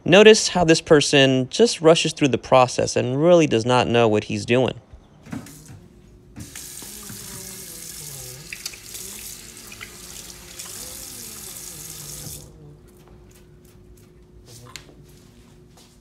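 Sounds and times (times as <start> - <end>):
faucet running into steel sink: 6.4 - 12.5
hands rinsed under water: 6.4 - 12.5.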